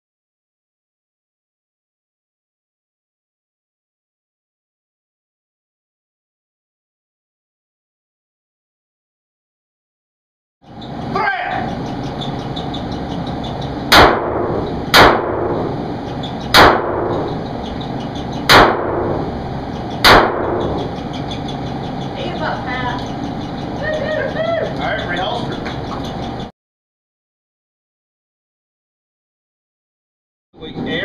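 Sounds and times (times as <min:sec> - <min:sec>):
handgun shots echoing: 0:13.9 - 0:15.7, 0:16.5 - 0:17.3, 0:18.5 - 0:19.2, 0:20.0 - 0:20.8.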